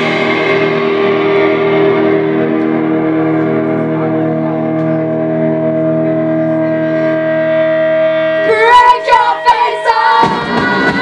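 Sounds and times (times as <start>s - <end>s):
electric guitar drone: 0.0s - 11.0s.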